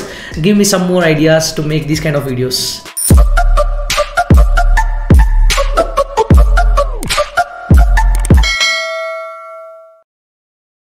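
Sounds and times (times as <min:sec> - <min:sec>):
bell-like jingle chime: 0:08.4 - 0:10.0.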